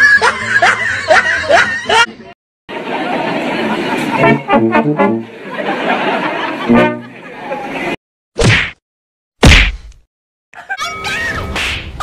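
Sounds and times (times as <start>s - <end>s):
comedy whack sound effects: 8.4s - 8.8s, 9.4s - 10.0s, 11.5s - 12.0s.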